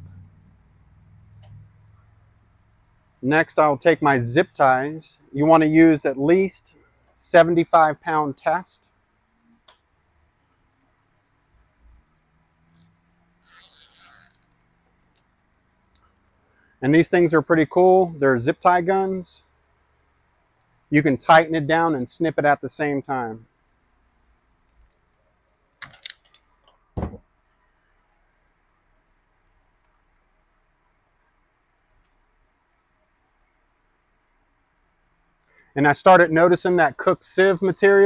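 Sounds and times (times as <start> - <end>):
zip tie rasping tight: 12.7 - 15.1.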